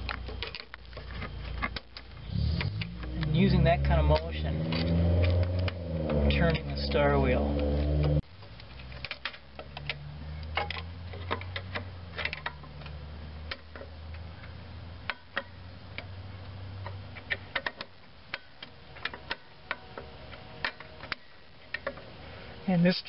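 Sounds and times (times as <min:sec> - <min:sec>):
low hum: 0:00.0 - 0:08.8.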